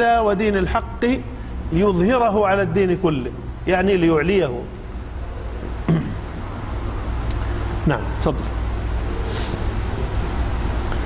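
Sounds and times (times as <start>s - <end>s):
low sound system hum: 0.0s - 11.0s.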